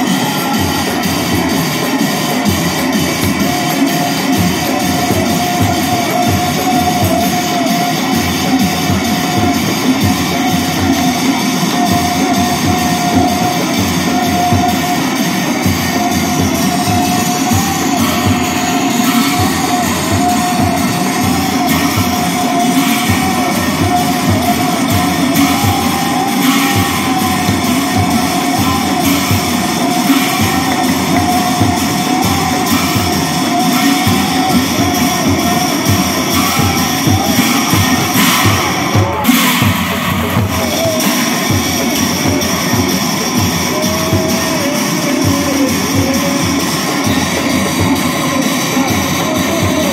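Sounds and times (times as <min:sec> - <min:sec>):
hand cymbals clashing: 0:00.0 - 0:49.9
large drums beaten: 0:00.0 - 0:49.9.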